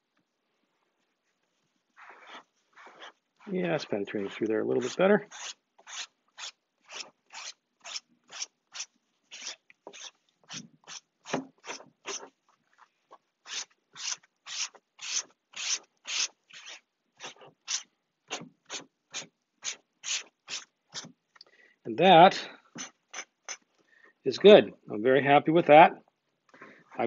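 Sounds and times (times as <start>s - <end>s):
paper towel scrubbing fabric: 1.2s - 12.4s.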